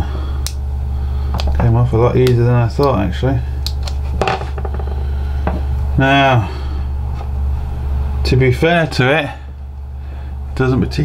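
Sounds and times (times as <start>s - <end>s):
steady low hum: 0.0s - 11.0s
tap on wooden bench: 4.2s - 5.6s.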